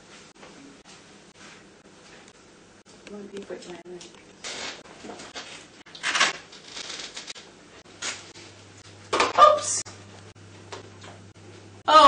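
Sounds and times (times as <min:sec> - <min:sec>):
cards rasping and rustling: 0:04.5 - 0:07.4.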